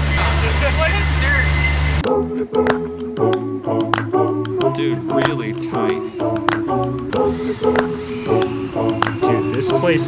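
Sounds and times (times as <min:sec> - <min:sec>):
a cappella singing: 0:02.0 - 0:10.0.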